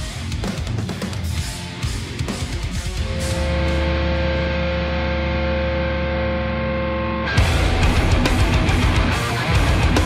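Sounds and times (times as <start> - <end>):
distorted guitar chord ringing: 1.2 - 10.0.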